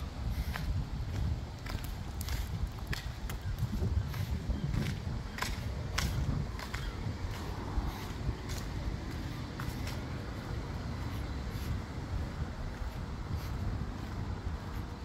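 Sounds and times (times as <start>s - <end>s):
footsteps on tarmac: 0.0s - 15.0s
steady low rumble: 0.0s - 15.0s.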